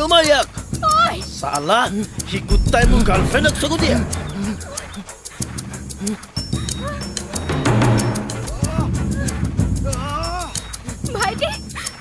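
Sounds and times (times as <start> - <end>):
background film music: 0.0 - 12.0.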